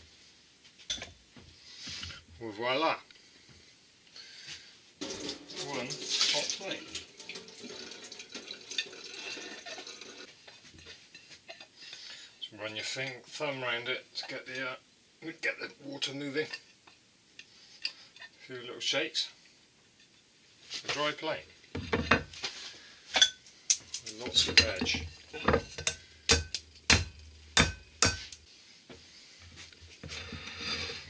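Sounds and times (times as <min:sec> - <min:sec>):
water splashing into a sink: 0:05.0 - 0:10.2.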